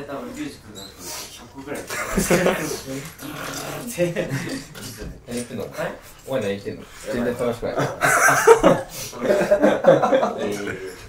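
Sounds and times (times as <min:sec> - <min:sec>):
men speaking: 0:00.0 - 0:11.0
men laughing heartily: 0:01.8 - 0:03.1, 0:04.1 - 0:04.9, 0:07.7 - 0:11.0.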